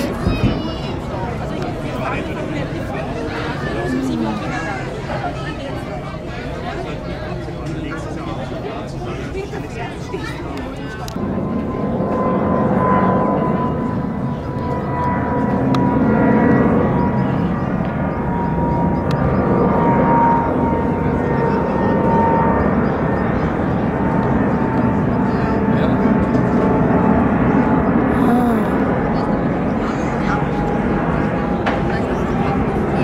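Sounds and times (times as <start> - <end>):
jet airliner roar: 0.0 - 33.0.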